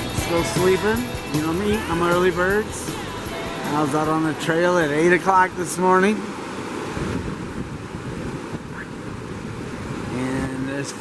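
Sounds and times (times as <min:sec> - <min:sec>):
creek water rushing over rocks: 0:00.0 - 0:11.0.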